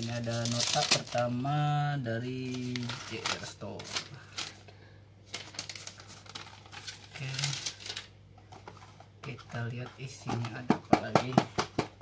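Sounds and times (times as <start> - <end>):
paper rustling and crinkling: 0.0 - 4.6, 5.3 - 9.8.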